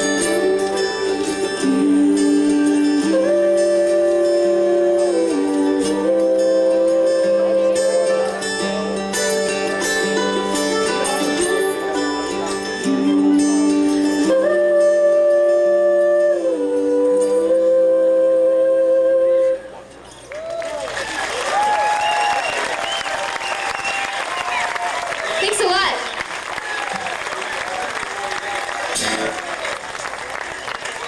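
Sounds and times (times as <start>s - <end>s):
bluegrass trio playing: 0.0s - 16.1s
audience applause: 20.3s - 31.0s.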